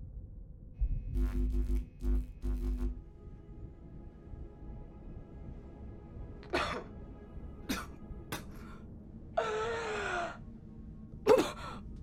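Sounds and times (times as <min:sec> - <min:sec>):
woman coughing: 0:06.5 - 0:06.9, 0:07.7 - 0:08.6, 0:11.3 - 0:11.6.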